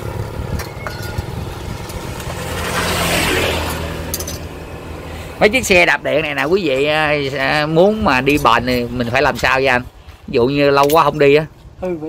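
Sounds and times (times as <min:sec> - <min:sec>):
motorbike passing: 0:00.0 - 0:09.7
low engine hum: 0:00.0 - 0:10.3.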